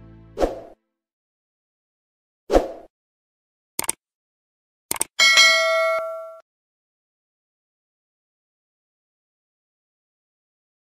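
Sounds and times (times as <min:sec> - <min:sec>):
double mouse click: 0:03.8 - 0:04.0, 0:04.9 - 0:05.1
bright bell ding: 0:05.2 - 0:06.4.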